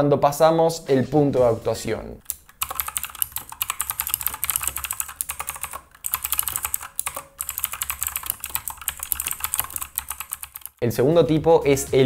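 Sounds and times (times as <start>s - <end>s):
mechanical keyboard typing: 2.2s - 10.8s.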